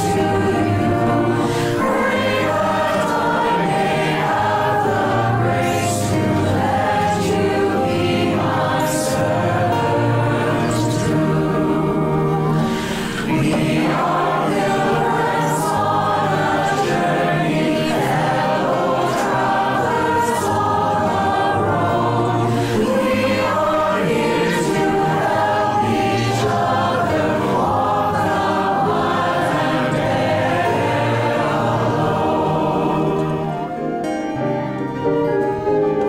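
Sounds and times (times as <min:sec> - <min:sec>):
choir singing: 0:00.0 - 0:36.0
instrumental accompaniment with bass: 0:00.0 - 0:36.0.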